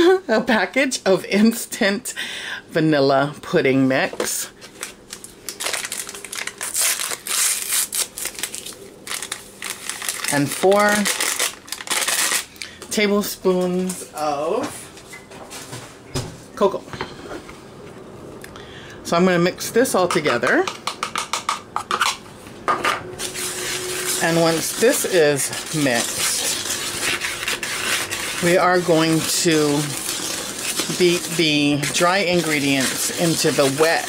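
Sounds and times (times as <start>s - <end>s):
plastic pouch crinkling: 4.7s - 12.5s, 23.2s - 34.0s
spatula scraping plastic bowl: 23.2s - 34.0s.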